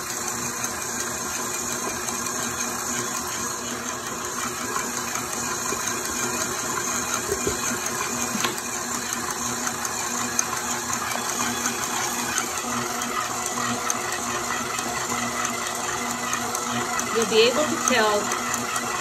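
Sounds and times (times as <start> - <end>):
stand mixer kneading dough: 0.0 - 19.0.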